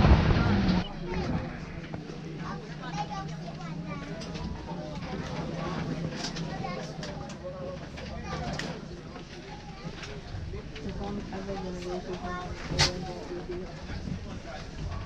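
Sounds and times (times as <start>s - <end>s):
people chattering: 0.0s - 15.0s.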